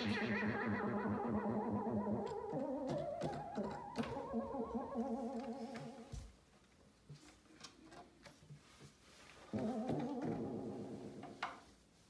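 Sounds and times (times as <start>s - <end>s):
synthesizer held wavering notes: 0.0s - 6.1s.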